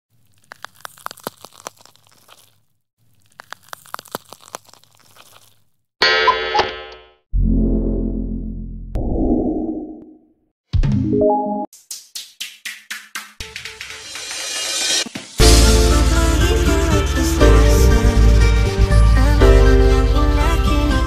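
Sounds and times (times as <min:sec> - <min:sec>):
crackles and clicks: 0:00.1 - 0:05.8.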